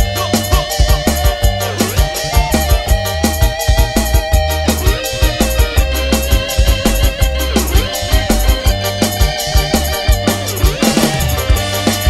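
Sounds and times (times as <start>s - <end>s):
live reggae band: 0.0s - 12.0s.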